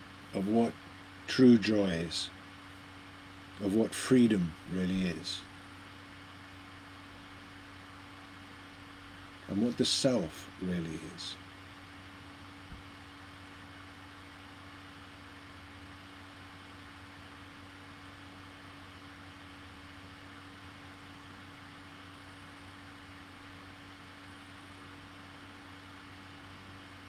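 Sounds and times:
faint steady hum: 0.0 - 27.0
even hiss: 9.4 - 11.4.

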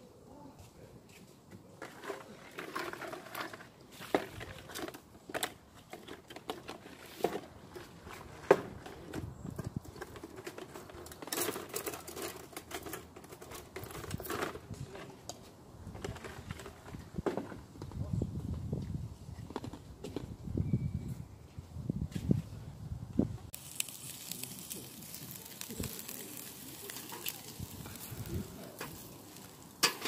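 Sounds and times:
plastic bag rustling: 23.6 - 30.0.

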